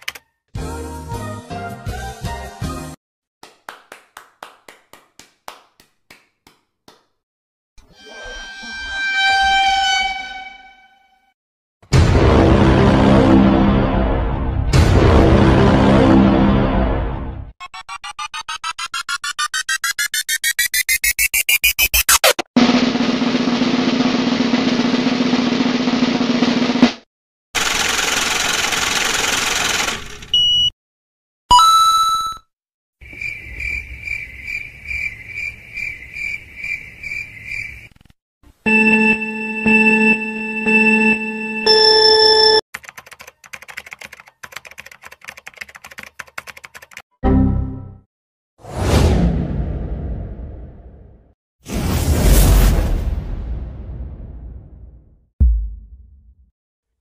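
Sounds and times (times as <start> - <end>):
rapid mechanical rattle: 27.6 - 30.3
high beep tone: 38.7 - 42.6.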